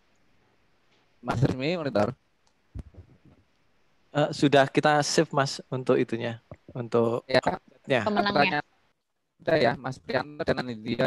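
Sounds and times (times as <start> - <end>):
soft muffled knocks: 2.8 - 3.4.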